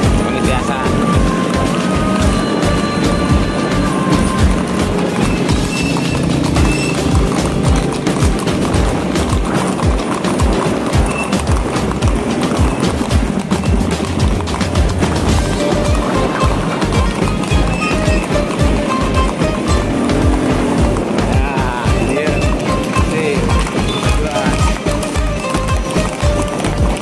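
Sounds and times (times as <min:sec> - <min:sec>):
background music with steady beat: 0:00.0 - 0:27.0
hooves clip-clopping on paved road: 0:00.0 - 0:27.0.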